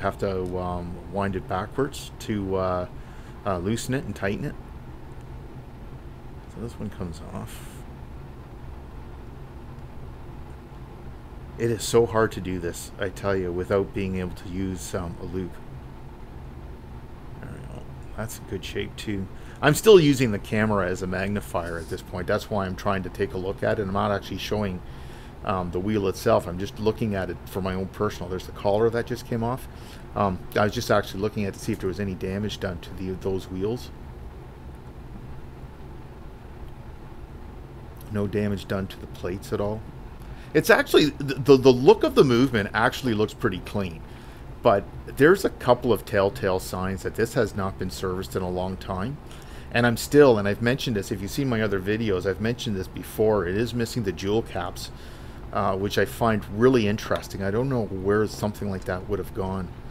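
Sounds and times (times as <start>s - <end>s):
background hiss: 0.0s - 59.9s
low background hum: 0.0s - 59.9s.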